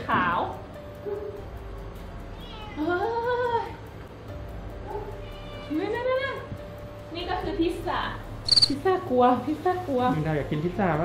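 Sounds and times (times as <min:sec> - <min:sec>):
cat meowing: 0:02.3 - 0:03.0, 0:04.9 - 0:05.8.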